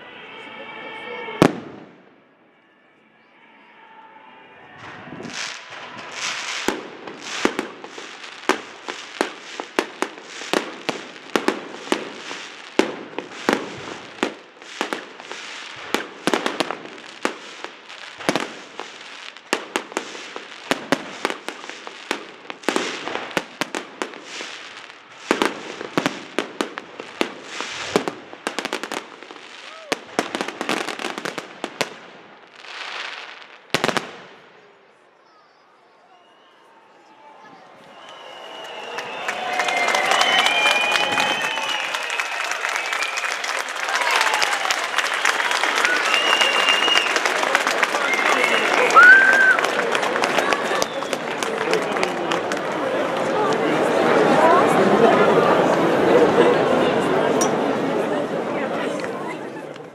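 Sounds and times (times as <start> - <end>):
fireworks bangs: 1.0 - 2.3, 4.7 - 34.8, 37.8 - 59.9.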